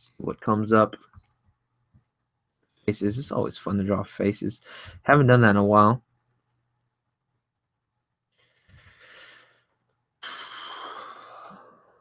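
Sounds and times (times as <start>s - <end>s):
man breathing heavily: 4.6s - 5.0s, 8.4s - 12.0s.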